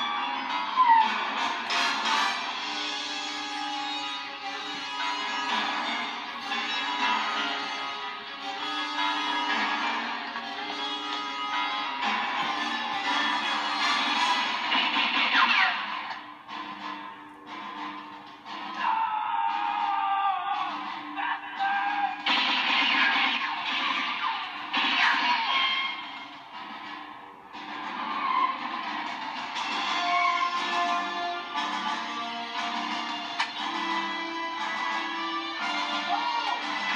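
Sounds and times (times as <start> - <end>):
orchestral film music from television: 0.0 - 36.9.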